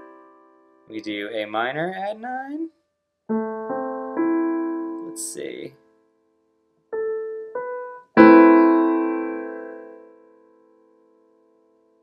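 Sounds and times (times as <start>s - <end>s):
piano notes and chord: 0.0s - 2.3s, 3.3s - 12.0s.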